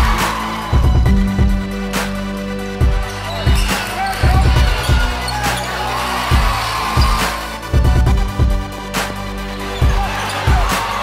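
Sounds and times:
music with heavy bass-drum beat: 0:00.0 - 0:11.0.

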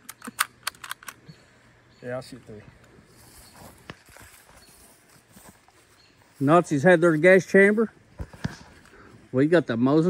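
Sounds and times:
rifle loading clicks: 0:00.0 - 0:01.2.

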